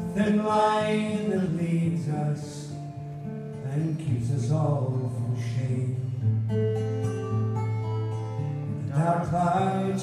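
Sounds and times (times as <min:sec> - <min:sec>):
man singing: 0:00.0 - 0:02.8, 0:03.6 - 0:06.3, 0:08.8 - 0:10.0
acoustic guitar: 0:00.0 - 0:10.0.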